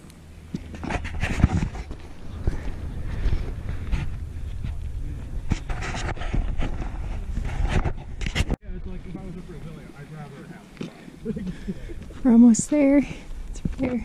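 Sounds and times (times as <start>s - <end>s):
wind rumble on microphone: 0.5s - 9.9s
person breathing heavily: 10.9s - 12.2s.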